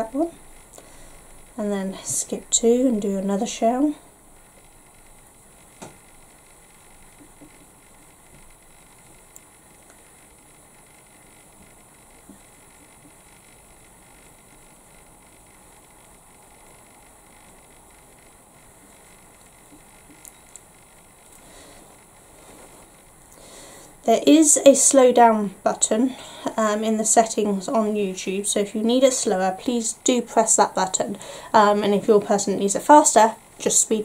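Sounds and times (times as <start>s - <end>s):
faint steady hiss: 0.0s - 34.0s.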